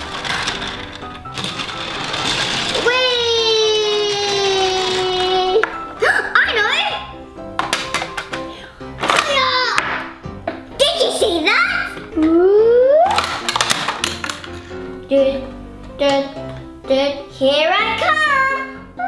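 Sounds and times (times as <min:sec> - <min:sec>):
toy vehicle rolling on plastic track: 0:00.0 - 0:05.6.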